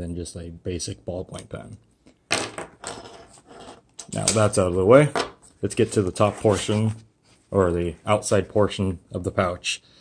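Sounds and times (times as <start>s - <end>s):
fabric rustling and scraping: 5.8s - 7.8s.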